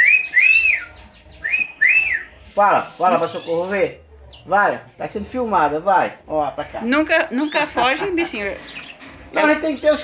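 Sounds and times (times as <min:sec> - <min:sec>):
cockatiel whistling: 0:00.0 - 0:02.3.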